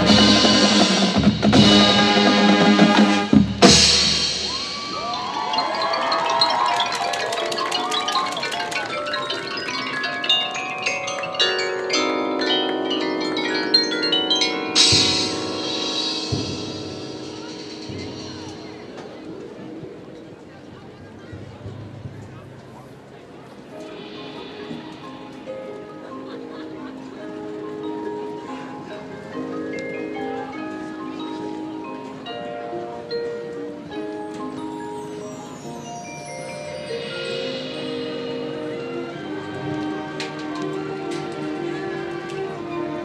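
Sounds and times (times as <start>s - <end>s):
marimba and bell notes: 3.7s - 19.8s, 23.6s - 43.0s
held low mallet notes: 3.7s - 22.9s, 23.6s - 43.0s.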